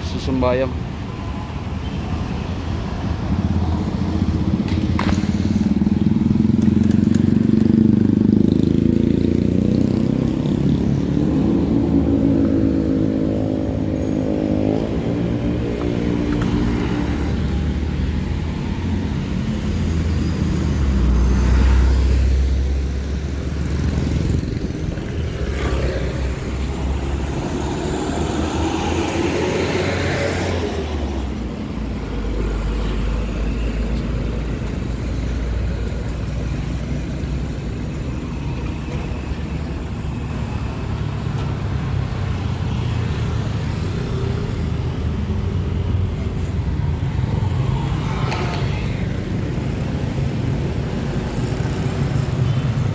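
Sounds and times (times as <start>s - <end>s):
vehicles passing: 0.0s - 52.9s.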